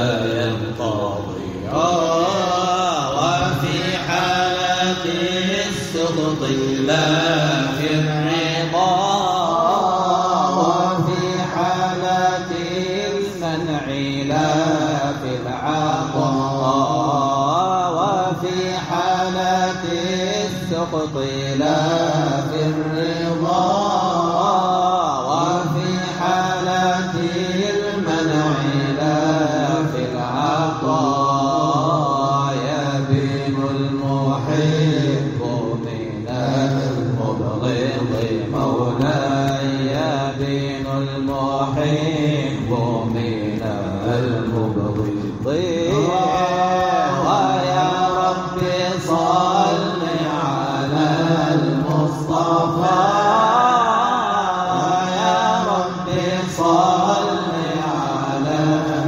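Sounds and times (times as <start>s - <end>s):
men chanting: 0.0s - 59.0s.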